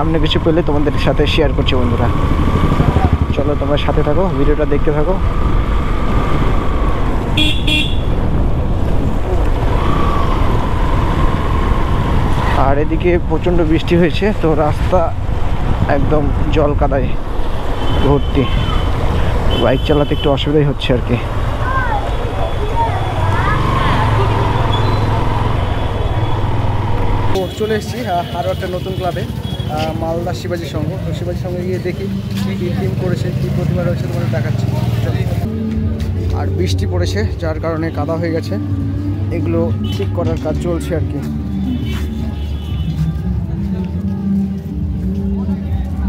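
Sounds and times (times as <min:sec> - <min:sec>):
motorcycle engine running: 0:00.0 - 0:09.7
road and wind rumble: 0:00.0 - 0:46.0
vehicle horn beeps: 0:07.4 - 0:08.2, 0:41.6 - 0:43.2.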